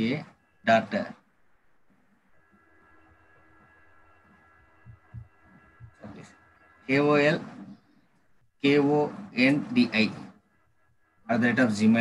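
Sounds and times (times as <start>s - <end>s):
faint hum of held tones: 0.0s - 12.0s
soft low thumps: 4.6s - 6.3s.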